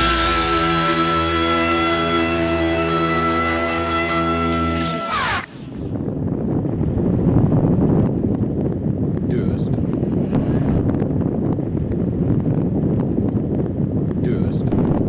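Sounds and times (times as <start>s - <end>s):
music: 0.0s - 5.5s
wind buffeting microphone: 4.4s - 15.0s.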